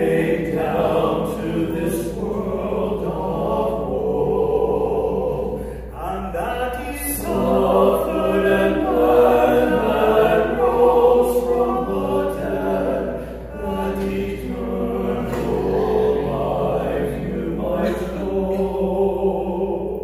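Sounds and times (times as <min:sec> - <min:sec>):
male vocal quartet singing: 0:00.0 - 0:20.0.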